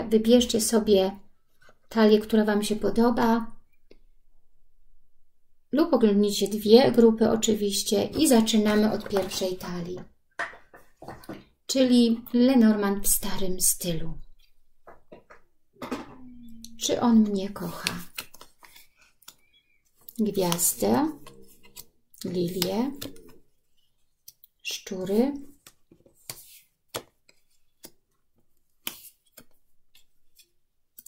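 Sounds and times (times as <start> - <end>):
woman speaking: 0.0 - 1.2, 1.9 - 3.6, 5.7 - 10.1, 11.7 - 14.3, 16.1 - 18.1, 20.1 - 21.6, 22.2 - 23.4, 24.6 - 25.5
faint paper rustling: 16.8 - 24.3, 25.4 - 31.0
cards clicking: 17.7 - 19.4, 20.4 - 23.4, 28.8 - 30.4.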